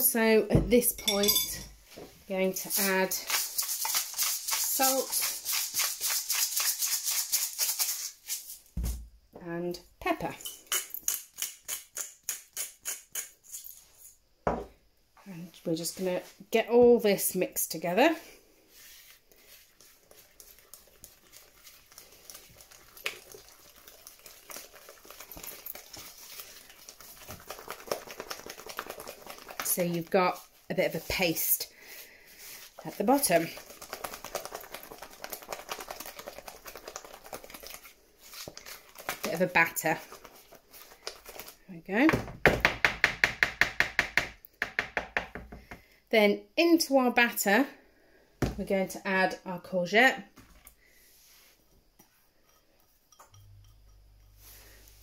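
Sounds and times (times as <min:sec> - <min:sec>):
whisk beating batter in bowl: 0:02.7 - 0:08.1, 0:18.7 - 0:41.6.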